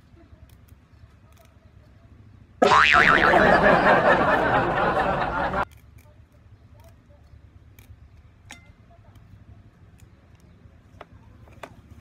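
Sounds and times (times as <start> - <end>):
wobbling boing sound effect: 2.6 - 3.6
dense loud sound: 2.6 - 5.6.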